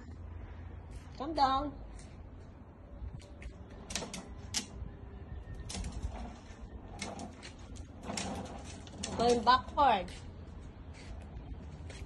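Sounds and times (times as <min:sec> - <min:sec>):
clicks and rattles: 0:03.7 - 0:04.8, 0:05.6 - 0:09.8
plastic wheels rolling on concrete: 0:05.4 - 0:12.0.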